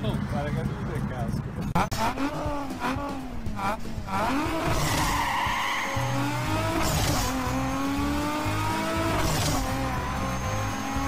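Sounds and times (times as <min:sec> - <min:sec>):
diesel van engine pulling away: 0:01.8 - 0:11.0.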